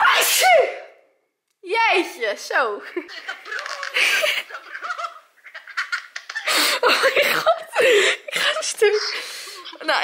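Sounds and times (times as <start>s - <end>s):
girl screaming excitedly: 0.0s - 1.0s.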